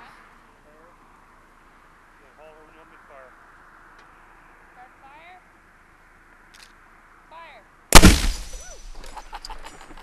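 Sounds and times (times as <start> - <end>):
cannon blast with echo: 8.0 - 8.9.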